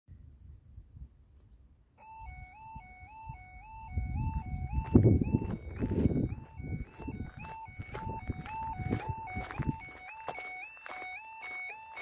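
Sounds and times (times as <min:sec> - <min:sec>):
two-tone warning alarm warble: 0:02.0 - 0:12.0.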